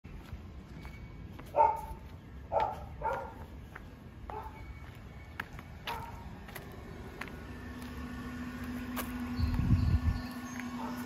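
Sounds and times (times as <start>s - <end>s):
dog barking loudly: 1.5s - 3.5s, 4.3s - 4.6s, 5.9s - 6.2s, 10.7s - 11.0s.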